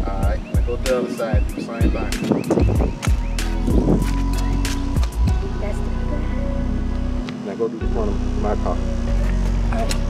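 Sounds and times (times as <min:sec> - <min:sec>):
bass drum hits: 0:00.0 - 0:06.0.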